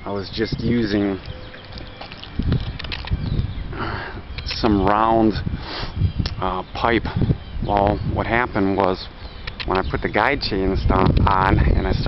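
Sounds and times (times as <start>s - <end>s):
wind on microphone: 0.0s - 12.0s
camera handling noise: 1.2s - 3.3s.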